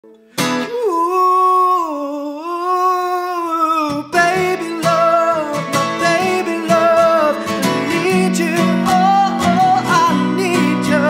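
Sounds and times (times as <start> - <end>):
acoustic guitar strum ringing: 0.1 - 0.9, 4.0 - 11.0
man singing a long note: 0.7 - 11.0.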